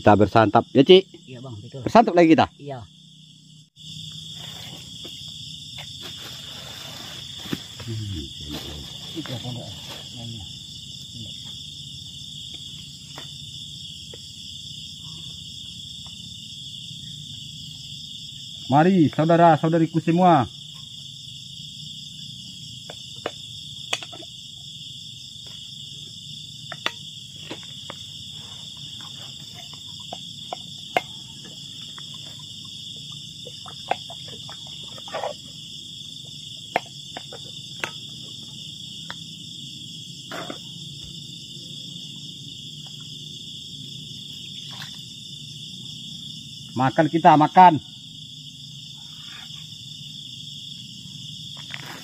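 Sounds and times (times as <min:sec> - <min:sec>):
night insects chorus: 0:00.0 - 0:52.0.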